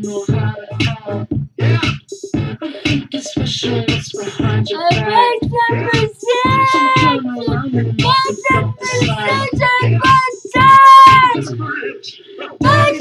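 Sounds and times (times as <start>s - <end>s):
backing music with steady beat: 0.0s - 13.0s
high-pitched singing: 2.7s - 11.8s, 12.6s - 13.0s.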